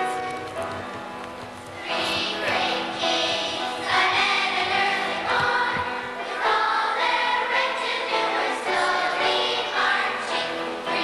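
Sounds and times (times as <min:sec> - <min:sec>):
children's choir singing: 0:01.8 - 0:11.0.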